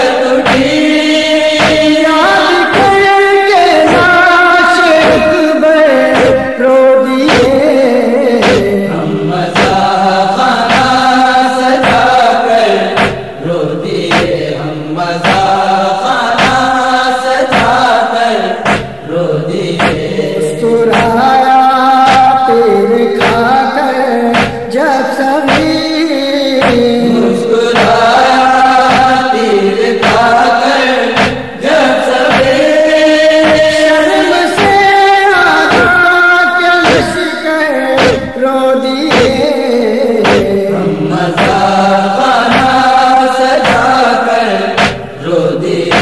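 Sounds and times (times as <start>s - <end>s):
mourning lament chanted: 0.0s - 46.0s
rhythmic chest-beating: 0.0s - 46.0s
steady beat: 0.4s - 0.9s, 1.6s - 2.0s, 2.6s - 3.1s, 3.8s - 4.2s, 5.0s - 5.5s, 6.1s - 6.5s, 7.2s - 7.8s, 8.4s - 8.8s, 9.6s - 9.9s, 10.7s - 11.0s, 11.8s - 12.2s, 12.9s - 13.4s, 14.1s - 14.4s, 15.2s - 15.6s, 16.4s - 16.7s, 18.6s - 19.1s, 19.8s - 20.2s, 20.9s - 21.3s, 23.2s - 23.6s, 24.3s - 24.7s, 25.5s - 25.9s, 26.6s - 29.3s, 30.0s - 30.4s, 31.1s - 35.0s, 35.6s - 36.0s, 36.8s - 37.2s, 38.0s - 38.4s, 39.1s - 39.5s, 40.2s - 41.8s, 42.4s - 42.9s, 43.6s - 44.0s, 44.8s - 45.2s
man chanting held notes: 19.2s - 29.2s.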